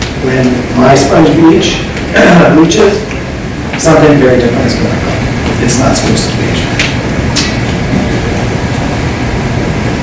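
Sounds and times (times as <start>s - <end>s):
rumbling room noise with hiss: 0.0s - 10.0s.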